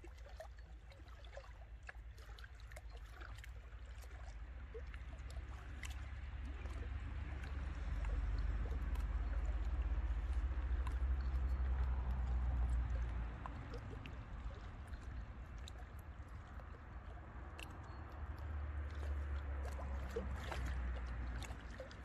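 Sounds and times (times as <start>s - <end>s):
small waves lapping on rocks: 0.0s - 22.0s.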